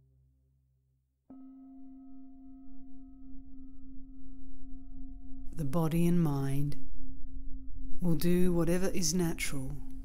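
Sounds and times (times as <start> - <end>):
low rumble: 2.9 - 10.0.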